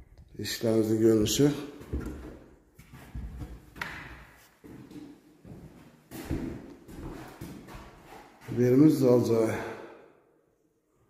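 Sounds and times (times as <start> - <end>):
footsteps on wooden floorboards: 1.8 - 8.6.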